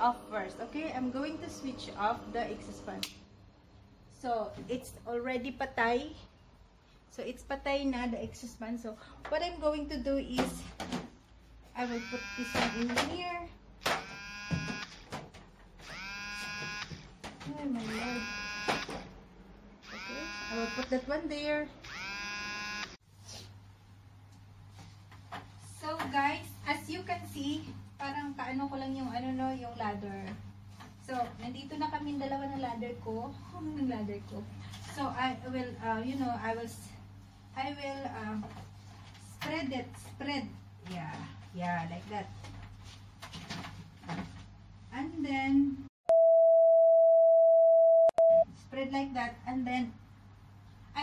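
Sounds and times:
electric buzz: 11.8s - 13.0s, 13.8s - 15.0s, 15.8s - 17.1s, 17.8s - 19.1s, 19.8s - 21.1s, 21.8s - 23.0s
electronic test tone: 12.0s - 12.9s, 14.1s - 14.9s, 17.9s - 18.9s, 21.9s - 23.0s.

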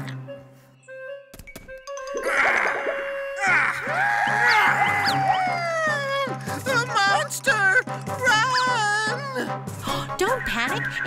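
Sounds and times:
cartoon music with sliding tones: 1.8s - 5.6s.

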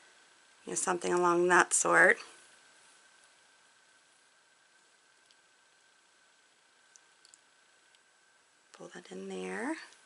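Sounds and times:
faint small clicks: 6.9s - 8.1s.

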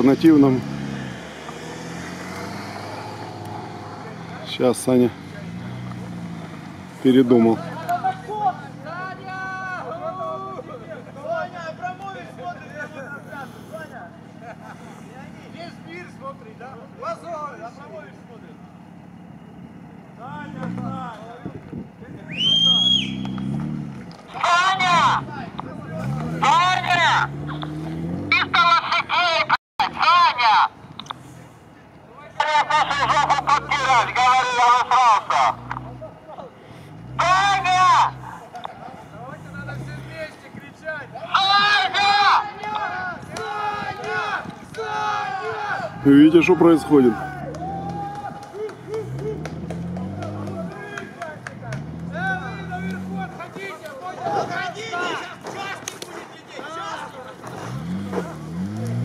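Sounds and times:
car engine revving: 0.0s - 59.0s
loud shouts: 7.7s - 12.4s, 22.2s - 23.3s, 24.3s - 27.3s, 37.2s - 38.4s, 40.8s - 57.2s.

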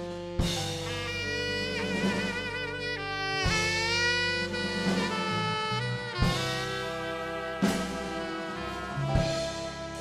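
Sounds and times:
drums: 0.0s - 10.0s
horn section playing held chords: 0.0s - 10.0s.

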